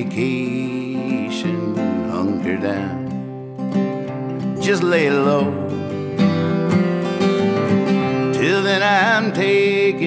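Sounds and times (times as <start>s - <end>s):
man singing: 0.0s - 3.3s, 4.4s - 6.4s, 8.0s - 10.0s
acoustic guitar strumming: 0.0s - 10.0s.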